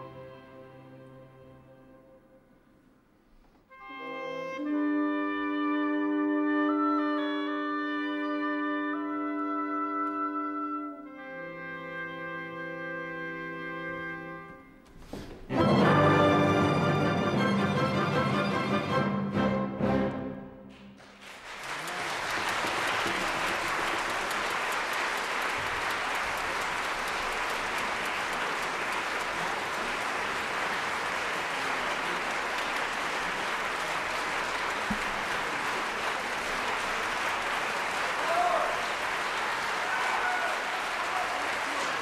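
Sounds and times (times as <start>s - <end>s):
audience applauding: 20.7s - 42.0s.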